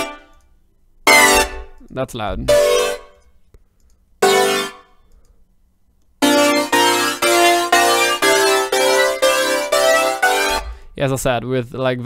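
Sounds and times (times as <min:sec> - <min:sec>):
synth chord stabs: 0:00.0 - 0:00.4, 0:01.1 - 0:03.2, 0:04.2 - 0:05.0, 0:06.2 - 0:11.0.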